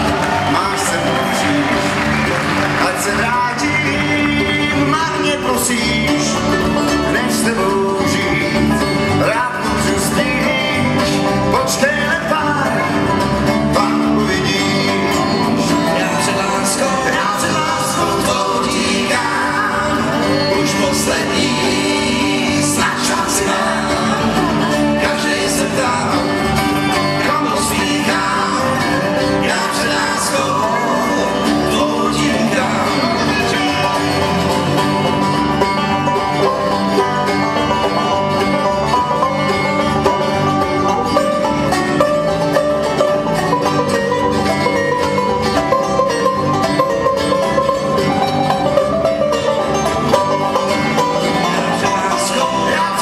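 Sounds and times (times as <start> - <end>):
man singing: 0.0 - 2.0, 2.6 - 39.2, 50.3 - 53.0
banjo: 0.0 - 53.0
bluegrass band playing: 0.0 - 53.0.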